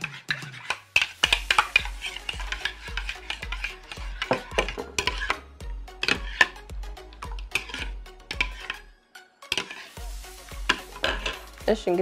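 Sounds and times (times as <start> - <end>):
spoon scraping plastic bowl: 0.0 - 6.6, 7.2 - 8.8, 9.5 - 10.0, 10.7 - 11.5
spoon stirring thick mixture: 0.0 - 8.9, 9.5 - 11.5.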